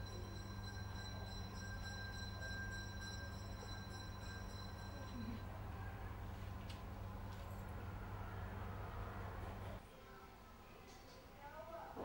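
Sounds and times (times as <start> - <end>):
faint high-pitched tones: 0.0 - 6.5
low electrical hum: 0.0 - 10.8.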